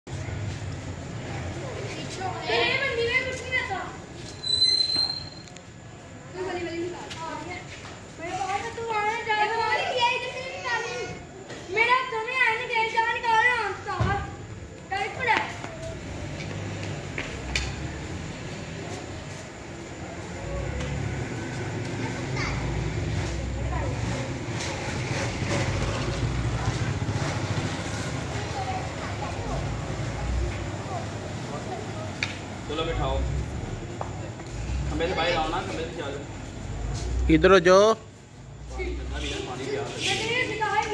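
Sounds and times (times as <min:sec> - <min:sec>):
voices of people and children: 0:00.1 - 0:40.9
children calling out: 0:08.6 - 0:14.0, 0:20.1 - 0:24.2.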